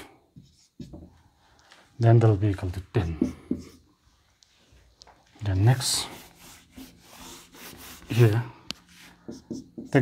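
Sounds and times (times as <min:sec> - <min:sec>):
whiteboard eraser scrubbing: 0:05.7 - 0:10.0.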